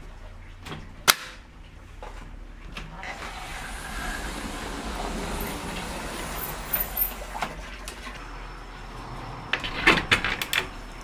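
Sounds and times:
rushing noise: 3.2 - 11.0.

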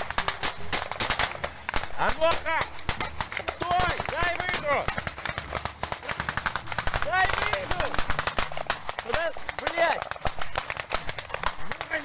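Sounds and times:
small-arms gunfire: 0.0 - 12.0.

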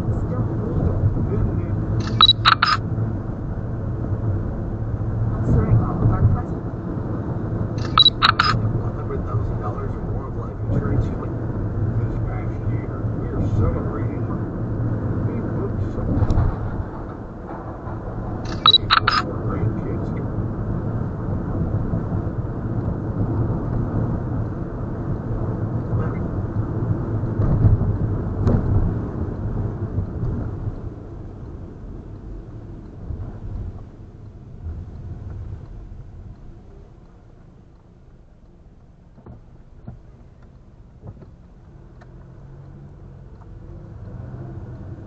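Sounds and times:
car road noise rumble: 0.0 - 45.0.

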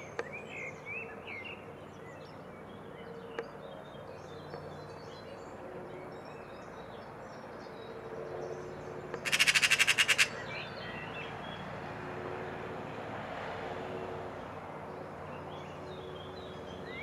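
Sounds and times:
magpie rattling chatter: 9.2 - 10.5.

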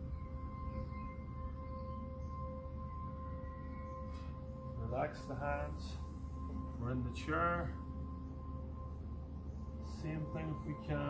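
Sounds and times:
low steady rumble: 0.0 - 11.0
soft slow ambient music: 0.0 - 11.0.

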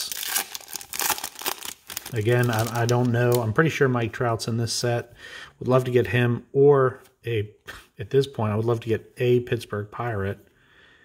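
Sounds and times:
foil wrapper tearing and crinkling: 0.0 - 3.4.

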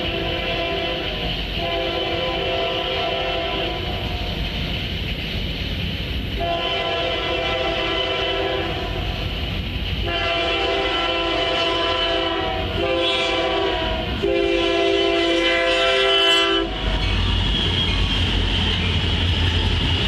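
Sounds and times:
diesel locomotive horn: 0.0 - 4.3, 6.4 - 9.2, 10.0 - 17.8
train rumble: 0.0 - 20.0.

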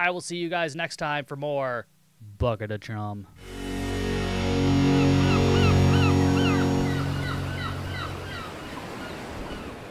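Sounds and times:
low horn-like drone: 3.4 - 8.5
seabird cries: 6.3 - 9.9.

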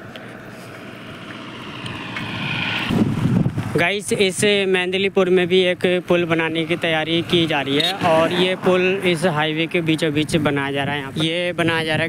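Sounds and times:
vehicle approaching: 0.0 - 11.0
wind rumbling on microphone: 0.7 - 4.6.

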